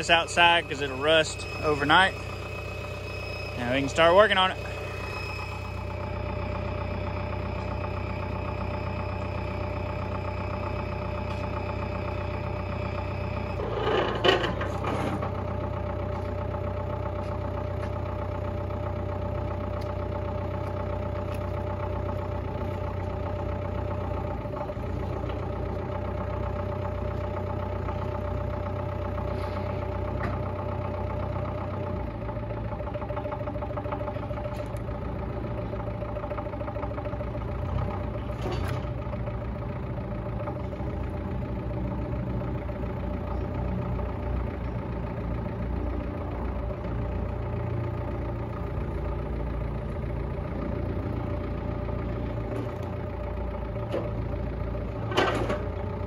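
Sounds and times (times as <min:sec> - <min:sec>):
engine clatter: 0:00.0 - 0:56.0
forklift engine idling: 0:00.0 - 0:56.0.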